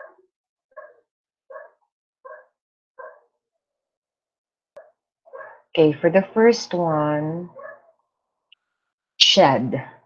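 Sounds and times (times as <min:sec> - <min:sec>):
dog barking: 0:00.0 - 0:03.4, 0:04.8 - 0:05.7, 0:07.5 - 0:08.0.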